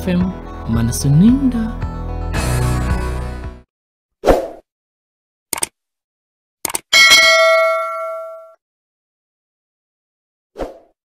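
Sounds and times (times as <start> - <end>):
bright notification ding: 7.0 - 8.6.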